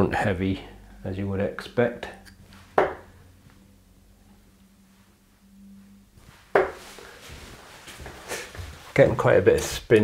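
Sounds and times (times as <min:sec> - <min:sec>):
dart striking dartboard: 0:02.8 - 0:03.1, 0:06.5 - 0:06.8.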